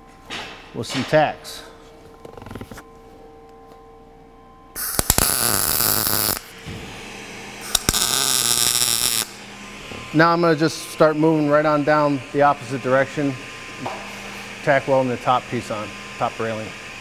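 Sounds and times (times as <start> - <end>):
welding arc crackling: 4.8 - 6.6, 7.6 - 9.5.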